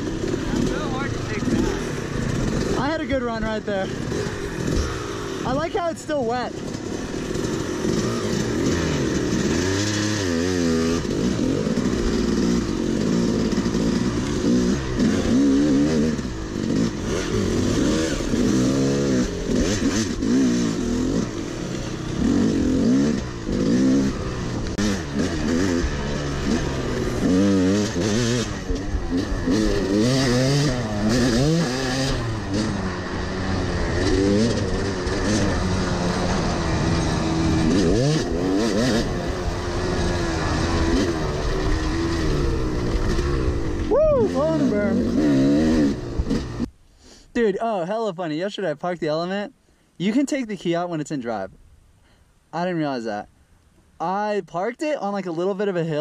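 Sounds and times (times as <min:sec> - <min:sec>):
dirt bike engine revving: 0:00.0 - 0:47.2.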